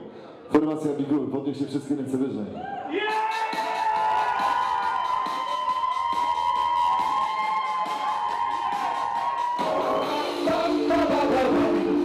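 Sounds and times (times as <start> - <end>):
guests cheering and whooping: 2.6 - 10.1.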